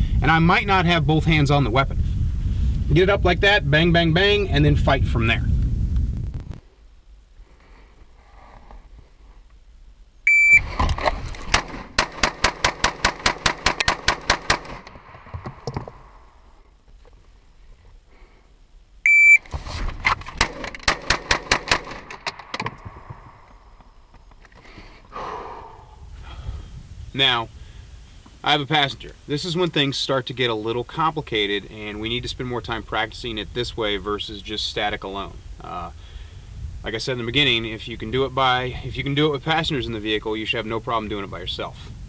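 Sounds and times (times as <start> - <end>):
shot timer beep: 10.3 - 10.6, 19.1 - 19.4
rapid pistol shots: 11.4 - 15.4, 20.4 - 23.0.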